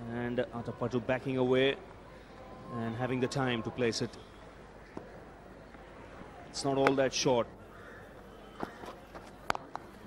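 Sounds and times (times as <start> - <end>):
faint ground ambience: 0.0 - 10.0.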